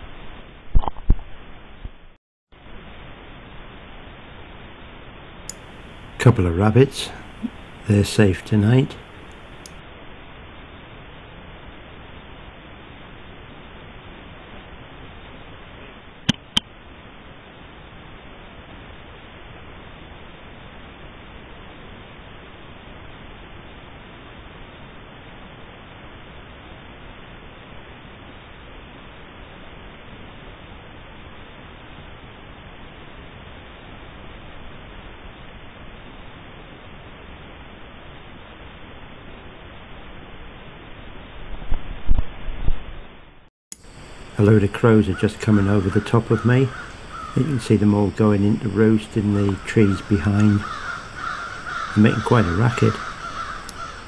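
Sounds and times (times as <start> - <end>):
steady recording hiss: 0.0 - 54.0
sharp clicks: 52.9 - 53.9.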